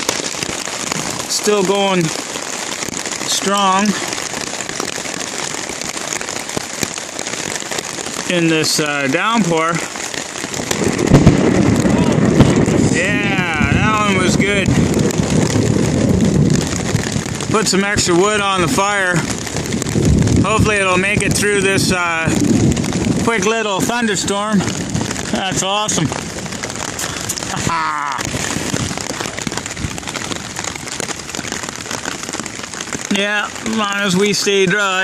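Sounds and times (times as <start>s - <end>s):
heavy rain drumming on a tarp: 0.0s - 35.0s.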